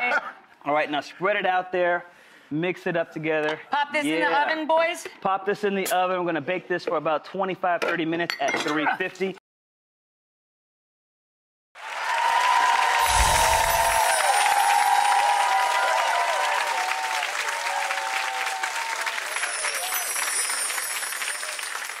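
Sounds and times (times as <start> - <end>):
audience clapping: 11.8 - 22.0.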